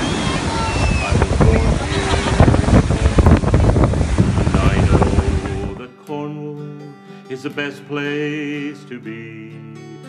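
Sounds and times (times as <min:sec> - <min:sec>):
surf breaking on a beach: 0:00.0 - 0:05.8
wind buffeting microphone: 0:00.0 - 0:05.8
people's voices: 0:00.0 - 0:05.9.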